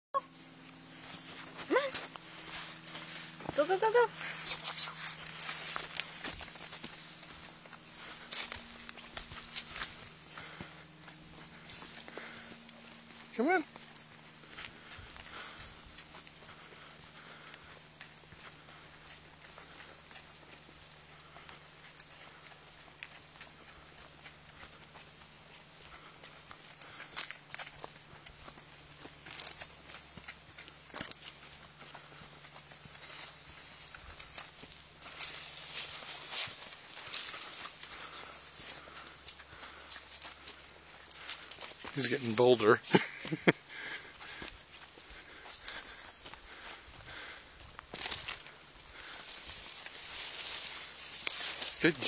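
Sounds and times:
footsteps on dirt trail: 0:00.4 - 0:52.0.

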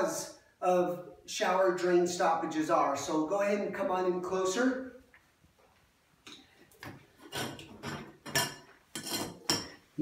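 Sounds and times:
metal drain cover clinking and scraping: 0:07.2 - 0:09.8.

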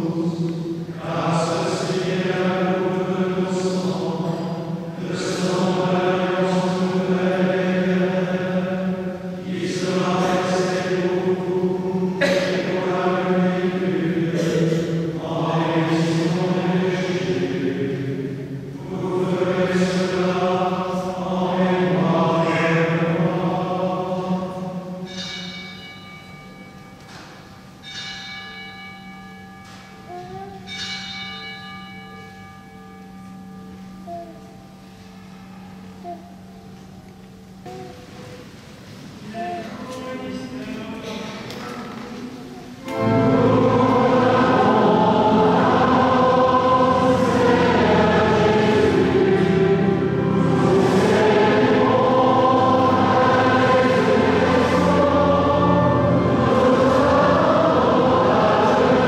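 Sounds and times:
solo voice chanting: 0:00.0 - 0:25.0, 0:33.6 - 0:34.8
bells ringing: 0:24.5 - 0:38.2, 0:42.8 - 0:59.0
steady low drone: 0:42.8 - 0:59.0.

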